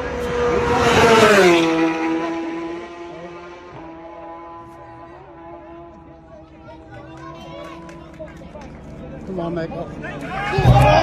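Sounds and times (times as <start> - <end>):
racing motorcycle passing: 0.0 - 11.0.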